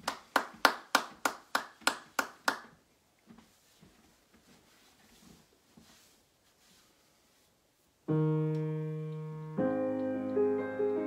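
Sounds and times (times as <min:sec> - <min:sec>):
person clapping slowly: 0:00.0 - 0:02.7.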